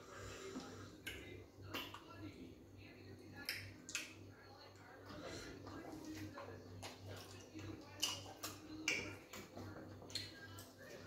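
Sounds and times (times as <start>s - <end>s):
wet mouth smacks and chewing: 5.8s - 10.4s.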